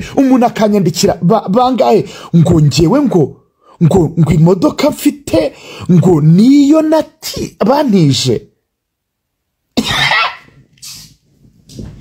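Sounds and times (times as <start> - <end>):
man coughing: 9.8 - 10.5
short hissing noise: 10.8 - 11.4.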